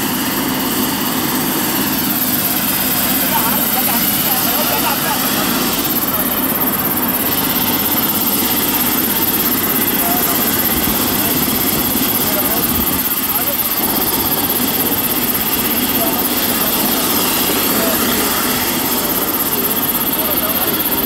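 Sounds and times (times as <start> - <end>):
helicopter turbine and rotor noise: 0.0 - 21.0
men talking: 2.2 - 21.0.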